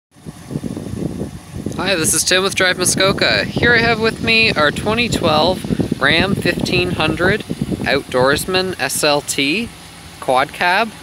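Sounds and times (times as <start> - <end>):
wind buffeting microphone: 0.2 - 9.8
man talking: 1.7 - 11.0.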